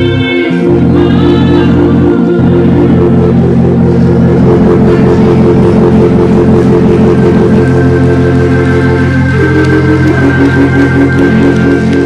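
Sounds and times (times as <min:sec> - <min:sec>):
church band playing: 0:00.0 - 0:12.0
sustained organ chords: 0:00.0 - 0:12.0.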